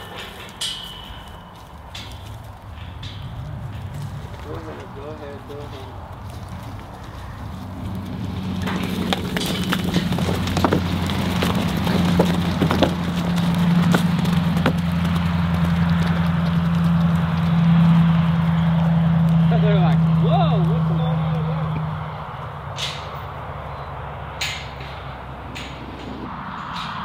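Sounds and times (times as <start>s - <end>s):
hooves knocking and clattering: 0.0s - 27.0s
low engine hum: 0.0s - 27.0s.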